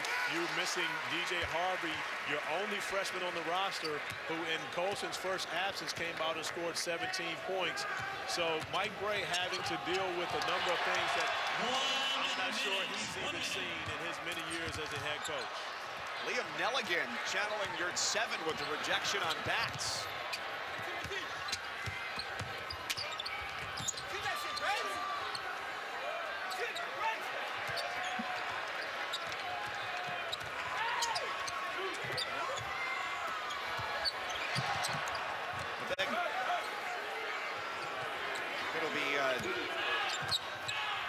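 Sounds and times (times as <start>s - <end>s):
crowd chatter: 0.0s - 41.0s
sneaker squeaks: 8.7s - 10.5s, 18.5s - 25.5s, 26.4s - 35.8s, 37.8s - 40.9s.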